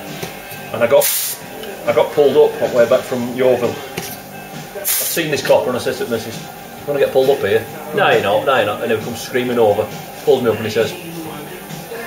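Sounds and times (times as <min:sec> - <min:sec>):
compressed air hiss: 0:00.9 - 0:12.0
person speaking: 0:04.7 - 0:12.0.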